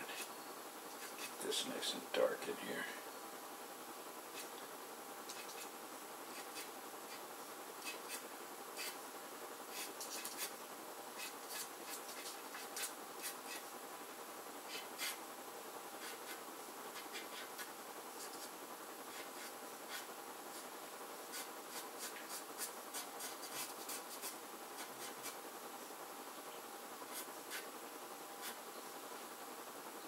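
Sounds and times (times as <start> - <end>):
pastel stick scratching on paper: 0.0 - 1.5, 4.3 - 4.5, 5.3 - 5.7, 6.3 - 7.2, 7.8 - 9.0, 9.7 - 10.5, 11.2 - 13.7, 14.7 - 15.2, 16.0 - 18.5, 19.1 - 20.7, 21.3 - 25.4, 27.1 - 27.7, 28.4 - 28.6.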